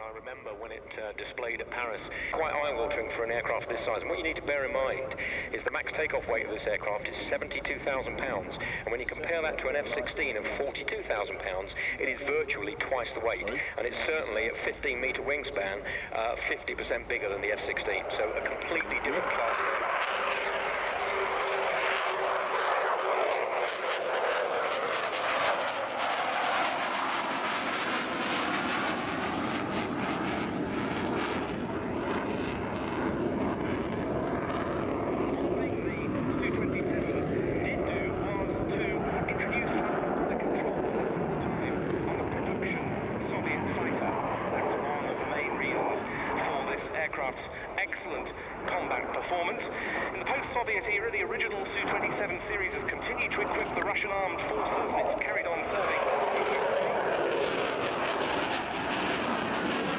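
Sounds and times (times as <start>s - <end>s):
jet engines roaring overhead: 0.0s - 59.9s.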